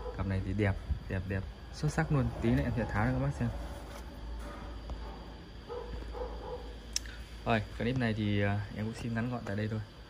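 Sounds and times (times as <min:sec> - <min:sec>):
dog barking faintly: 0:00.0 - 0:00.5, 0:04.4 - 0:06.8
steady low hum: 0:00.0 - 0:10.0.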